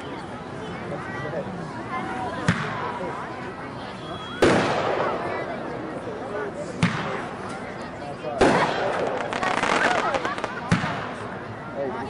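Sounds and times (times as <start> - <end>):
firework burst crackling: 4.4 - 5.2, 8.4 - 11.2
sharp firework bang: 4.4 - 5.2, 8.4 - 11.2.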